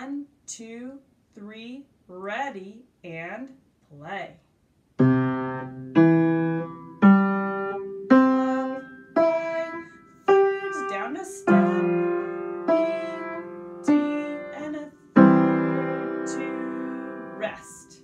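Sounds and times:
upright piano slow notes: 5.0 - 18.0.

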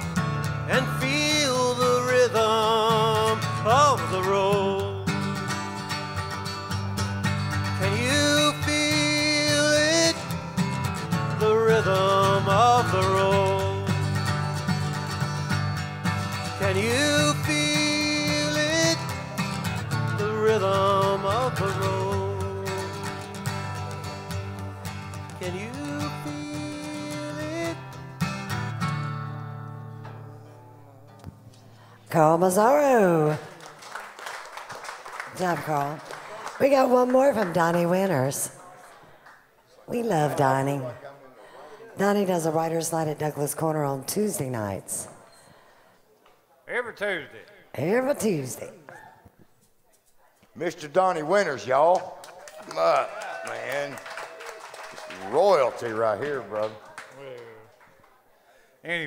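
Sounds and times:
man singing with vibrato: 0.0 - 5.7, 7.6 - 14.6, 16.3 - 28.2
acoustic guitar strummed: 0.0 - 32.2.

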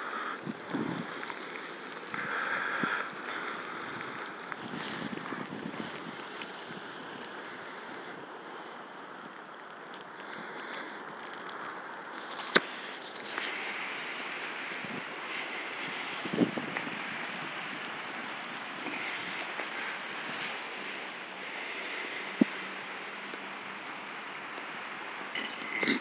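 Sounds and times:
wind noise on microphone: 0.3 - 1.3, 2.1 - 7.2, 13.2 - 21.4.

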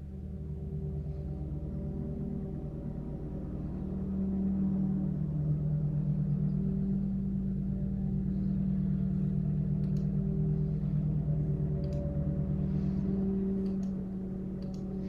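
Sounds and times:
low droning hum: 0.0 - 15.0
faint clicks: 9.6 - 10.5, 11.7 - 12.5, 13.4 - 15.0.

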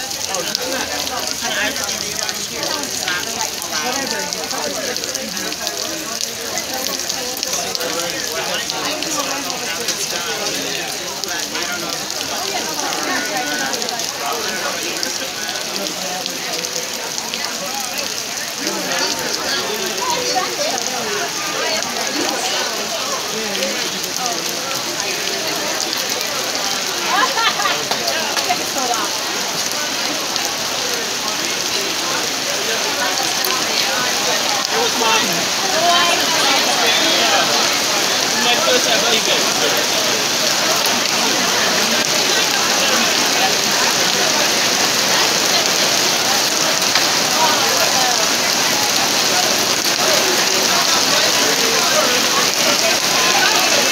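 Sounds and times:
heavy rain falling: 0.0 - 53.9.

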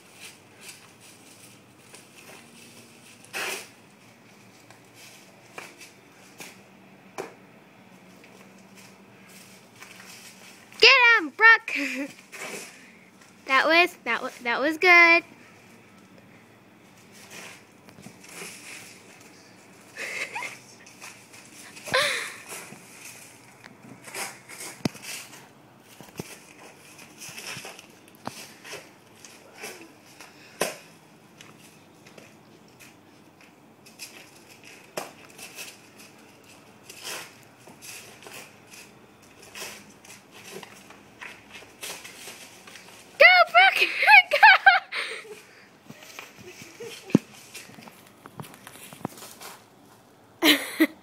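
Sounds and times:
high-pitched voice crying out: 43.2 - 45.2.

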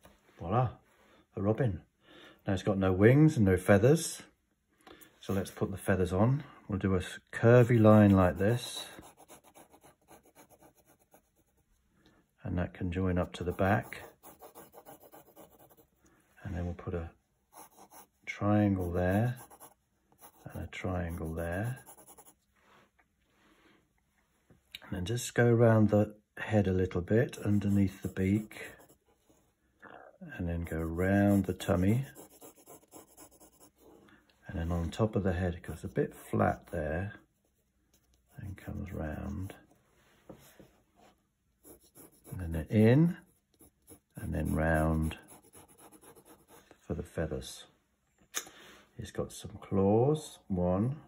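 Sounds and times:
pencil scratching on paper: 7.7 - 11.7, 13.2 - 16.0, 17.5 - 22.4, 27.3 - 29.2, 30.6 - 34.0, 35.7 - 36.8, 37.4 - 39.6, 41.6 - 46.7.

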